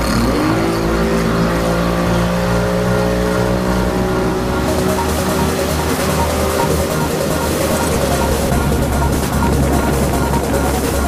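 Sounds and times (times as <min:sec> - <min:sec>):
motorboat engine revving: 0:00.0 - 0:11.0
background music: 0:01.7 - 0:11.0.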